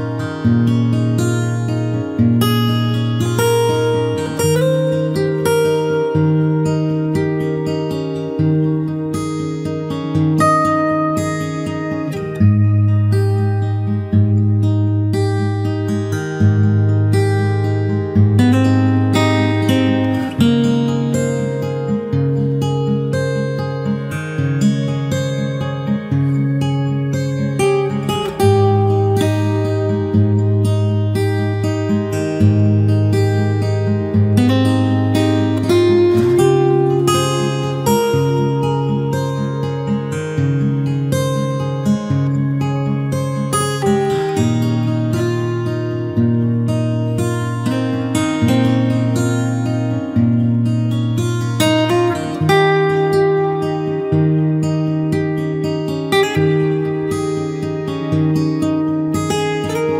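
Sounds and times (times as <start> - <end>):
acoustic guitar music: 0.0 - 59.9.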